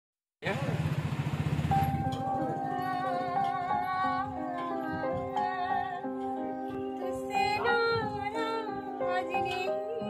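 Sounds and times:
small engine pulsing: 0.4s - 3.0s.

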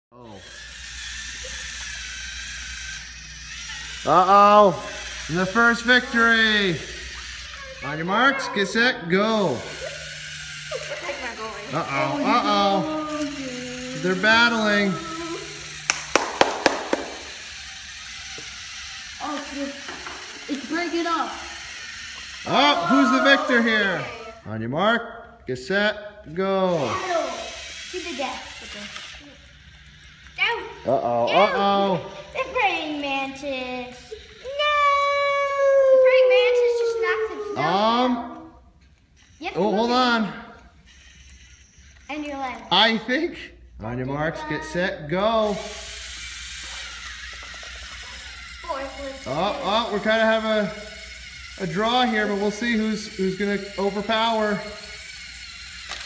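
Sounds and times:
small electric motors whirring: 0.2s - 24.6s, 25.2s - 56.0s
burst of voices: 22.4s - 24.4s.

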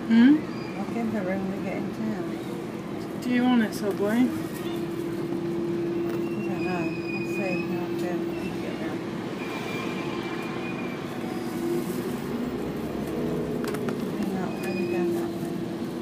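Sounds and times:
bus engine drone: 0.0s - 16.0s.

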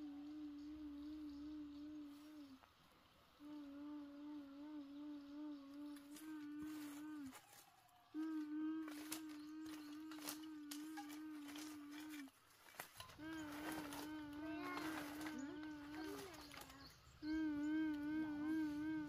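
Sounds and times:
ghostly humming voice: 0.0s - 2.7s, 3.4s - 7.4s, 8.2s - 12.3s, 13.2s - 19.0s.

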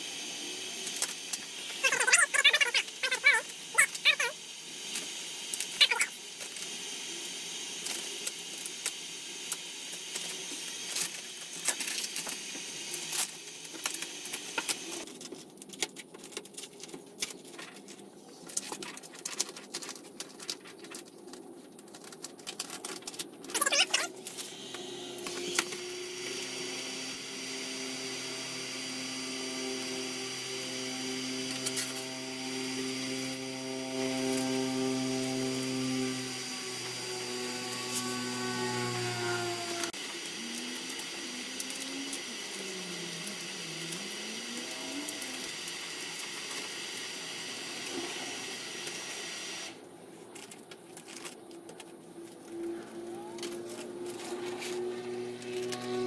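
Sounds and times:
heat gun blowing: 24.2s - 49.8s.

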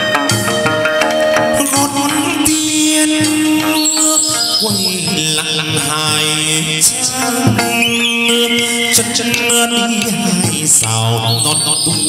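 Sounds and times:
accompanying instruments: 0.0s - 12.0s
sharp percussion stroke: 0.0s - 12.0s
chanted vocal line: 1.3s - 12.0s.

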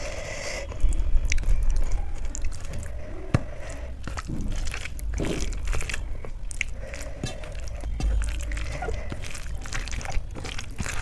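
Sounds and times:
chewing: 0.0s - 11.0s
fingers squishing rice: 0.0s - 11.0s.

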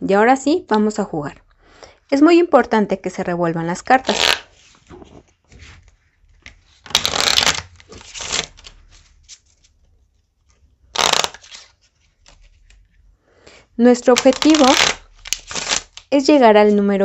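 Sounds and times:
cards riffle-shuffled: 4.0s - 9.8s, 10.4s - 12.8s, 14.1s - 16.1s
cards bridged together: 4.0s - 13.0s.

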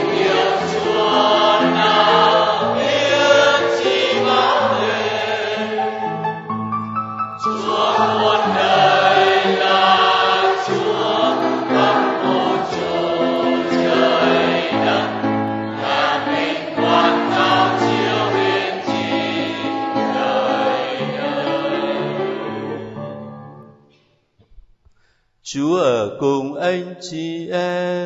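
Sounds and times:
choir singing a hymn: 0.0s - 6.5s, 7.4s - 23.5s.

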